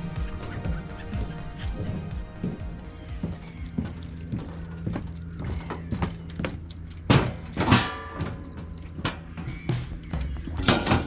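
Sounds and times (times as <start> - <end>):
steady low hum: 0.0 - 10.6.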